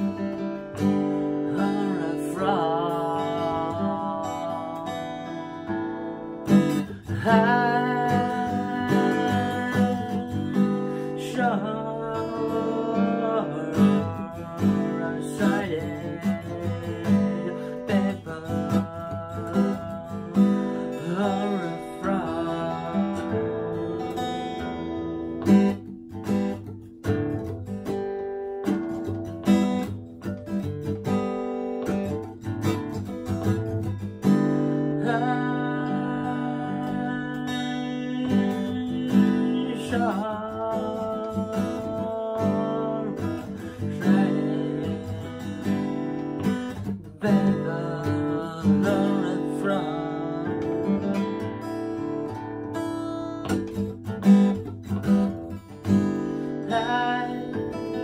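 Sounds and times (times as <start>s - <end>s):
man singing: 0.0s - 25.7s, 33.5s - 58.0s
acoustic guitar strumming: 0.0s - 58.0s.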